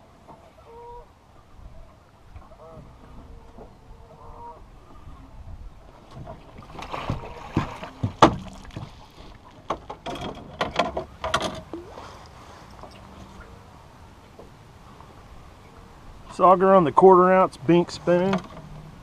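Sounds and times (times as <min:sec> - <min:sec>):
faint water sounds: 0:00.0 - 0:19.0
knocks and clatters in boat: 0:02.3 - 0:13.5, 0:18.0 - 0:19.0
splashing: 0:06.1 - 0:10.5.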